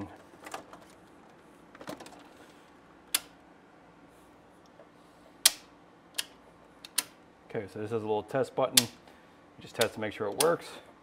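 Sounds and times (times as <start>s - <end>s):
circuit breaker clicks: 3.1s - 3.4s, 5.4s - 7.2s, 8.7s - 9.0s, 9.8s - 10.6s.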